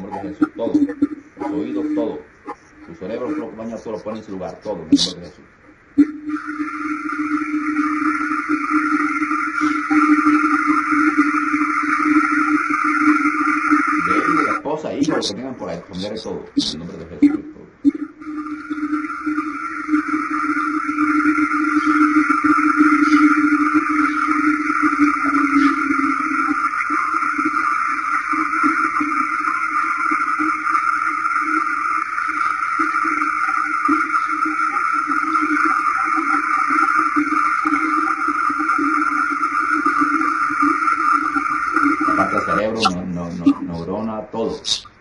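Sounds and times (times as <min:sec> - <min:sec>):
loud steady drone: 0:00.0 - 0:05.3, 0:05.9 - 0:43.9.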